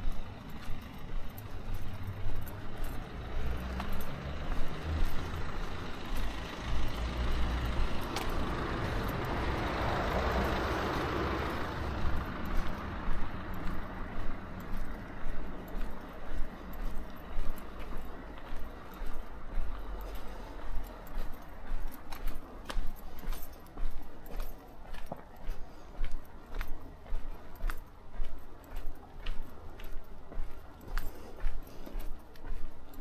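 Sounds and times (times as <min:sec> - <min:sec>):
footsteps walking: 0:00.0 - 0:33.0
vehicle passing by: 0:00.0 - 0:33.0.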